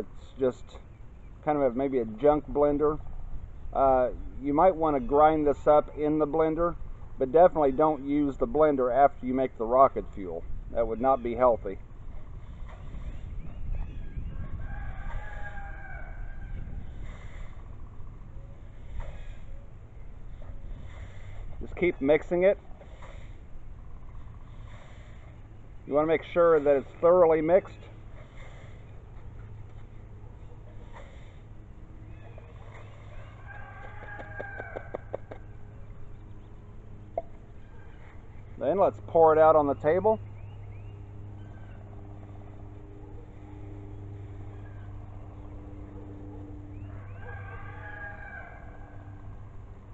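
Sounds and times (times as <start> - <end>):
low wind rumble on microphone: 0.0 - 39.1
steady low hum: 0.0 - 49.9
bird chirping and calling: 10.4 - 29.6
rooster crowing faintly: 14.2 - 16.9, 32.2 - 35.4, 46.8 - 49.3.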